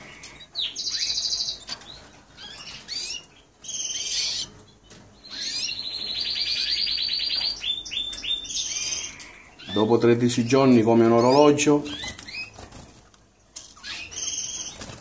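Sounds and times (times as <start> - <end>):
bird chirps: 0.0 - 10.0, 11.1 - 12.6, 13.6 - 15.0
canary trilling: 0.0 - 15.0.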